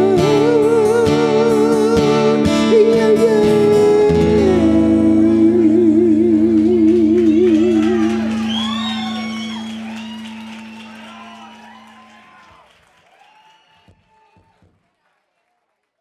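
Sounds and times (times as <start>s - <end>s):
audience whooping and cheering: 7.0s - 14.7s.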